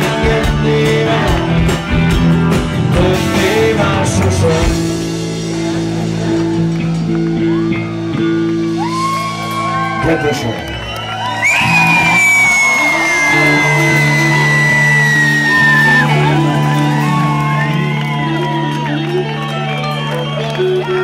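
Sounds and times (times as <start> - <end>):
electric guitar and bass chord: 0.0 - 10.3
crowd whooping and shouting: 5.7 - 21.0
high falling whistle: 11.4 - 16.1.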